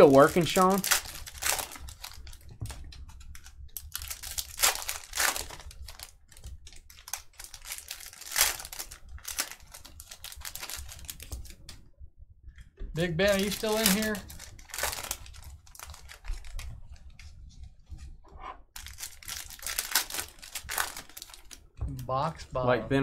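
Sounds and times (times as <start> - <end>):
cards being handled: 0.0 - 11.8, 13.0 - 18.1
foil wrappers crinkling: 0.0 - 11.8, 13.0 - 17.3, 18.8 - 21.8.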